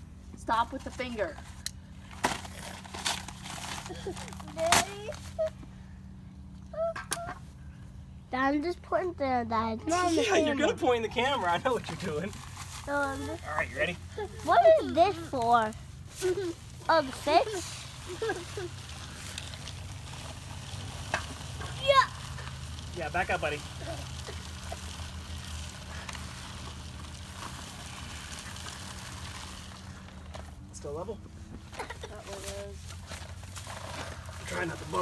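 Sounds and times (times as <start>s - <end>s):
steady low hum: 0.0s - 35.0s
child's high-pitched vocal sounds: 6.7s - 7.5s
concrete mix pouring: 16.3s - 31.0s, 32.4s - 35.0s.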